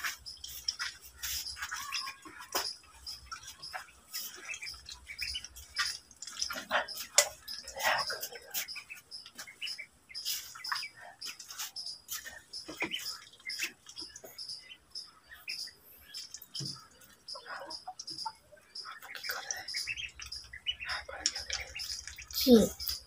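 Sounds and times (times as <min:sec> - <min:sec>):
ducklings peeping: 0:00.0 - 0:23.0.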